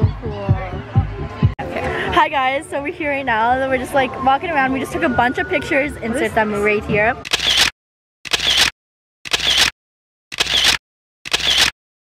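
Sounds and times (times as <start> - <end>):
camera shutter snapping: 7.3 - 7.7, 8.3 - 8.7, 9.3 - 9.7, 10.3 - 11.8.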